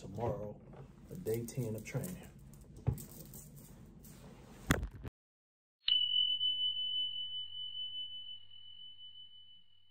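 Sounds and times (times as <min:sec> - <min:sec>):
high bell-like ding: 0:05.8 - 0:09.9.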